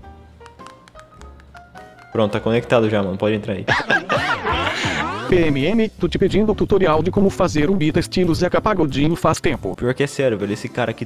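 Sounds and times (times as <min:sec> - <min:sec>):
plucked notes background music: 0:00.0 - 0:11.0
sharp taps: 0:00.4 - 0:02.2.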